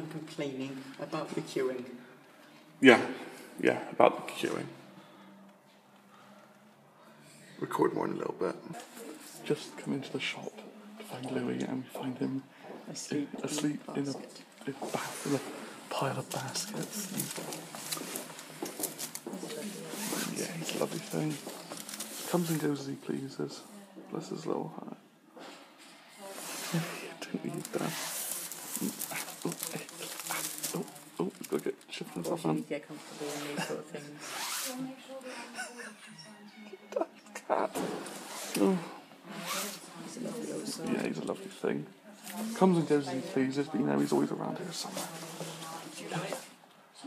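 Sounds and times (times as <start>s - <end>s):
low indistinct voices: 4.6s - 47.0s
wicker basket creaking: 16.3s - 22.6s, 27.5s - 31.8s.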